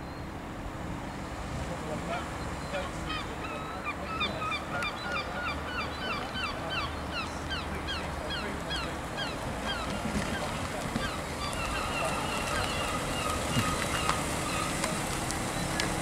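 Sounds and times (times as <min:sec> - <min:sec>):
car engine running low: 0:08.7 - 0:16.0.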